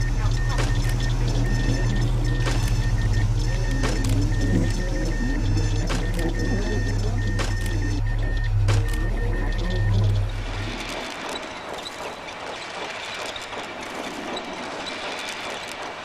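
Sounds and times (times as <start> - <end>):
sharp clicks: 0.2 - 16.0.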